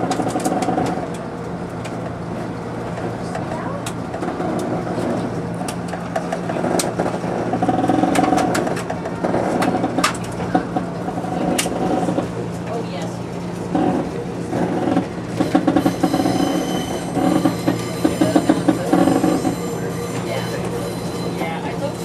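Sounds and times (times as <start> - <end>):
diesel railcar engine drone: 0.0 - 22.0.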